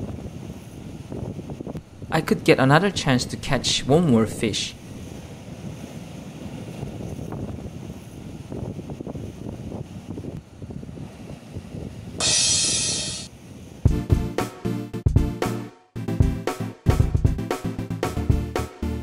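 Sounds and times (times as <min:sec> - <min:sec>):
surf on rocky shore: 0:00.0 - 0:13.9
wind: 0:00.0 - 0:14.7
loud hiss: 0:12.2 - 0:13.3
upbeat music: 0:13.9 - 0:19.0.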